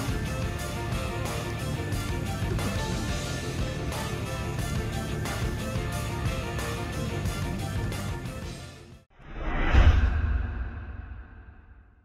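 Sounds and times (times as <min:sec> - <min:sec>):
whoosh with deep rumble: 0:09.1 - 0:12.0.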